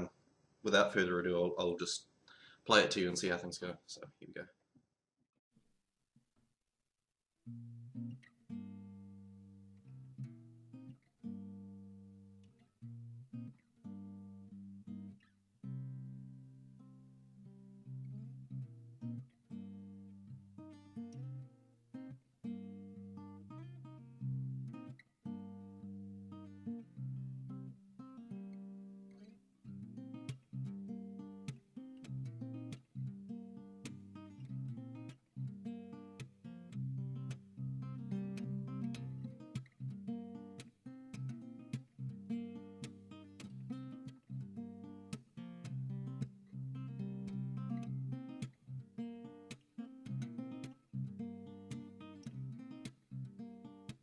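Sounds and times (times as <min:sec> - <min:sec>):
acoustic guitar fingerstyle: 0:07.5 - 0:54.0.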